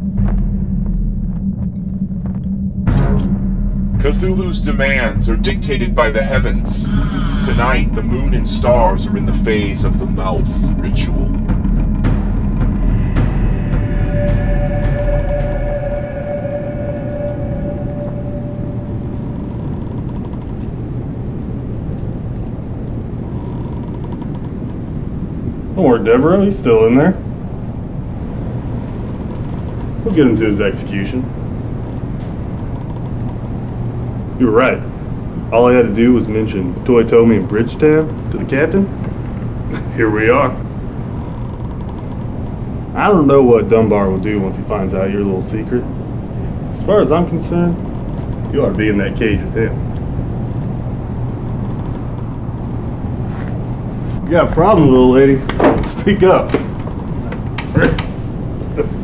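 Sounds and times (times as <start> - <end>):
held musical note: 0.0 - 19.9
low rumbling drone: 0.0 - 59.0.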